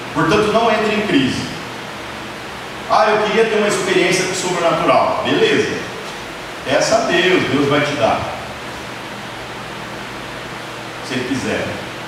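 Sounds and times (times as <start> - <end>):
steady background hiss: 0.0 - 12.0
man speaking: 0.2 - 1.6, 2.9 - 6.0, 6.7 - 8.5, 11.0 - 11.8.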